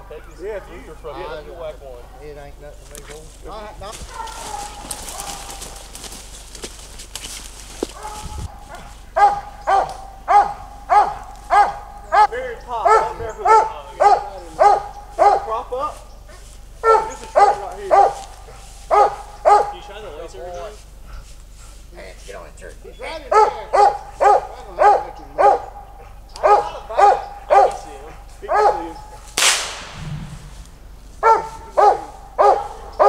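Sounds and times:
dog barking: 0:00.0 - 0:01.3, 0:02.0 - 0:02.5, 0:04.0 - 0:05.9, 0:07.8 - 0:21.2, 0:23.1 - 0:29.4, 0:31.2 - 0:33.0.

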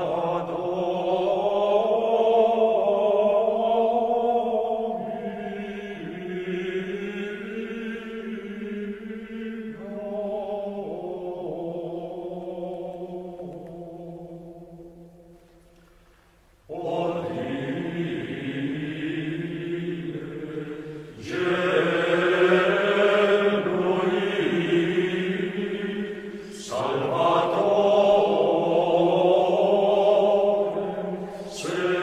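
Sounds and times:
men's choir chanting in unison: 0:00.0 - 0:14.5, 0:16.7 - 0:32.0.

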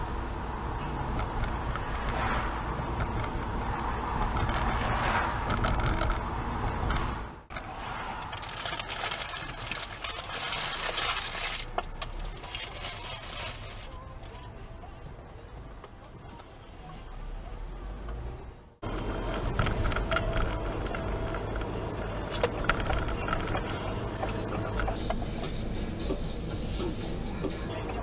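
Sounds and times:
road and engine rumble: 0:00.0 - 0:28.0
clicking and rattling: 0:01.0 - 0:07.6, 0:18.8 - 0:25.0.

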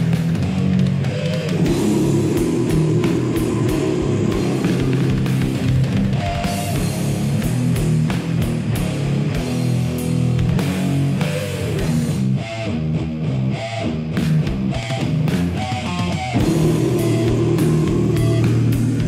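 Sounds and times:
distorted electric guitars: 0:00.0 - 0:19.0
heavy metal music: 0:00.0 - 0:19.0.

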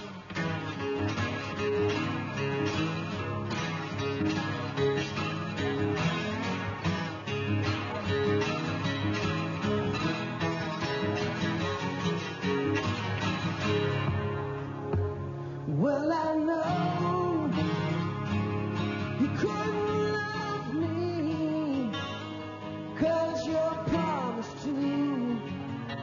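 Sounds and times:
acoustic guitars picking and strumming: 0:00.0 - 0:26.0.

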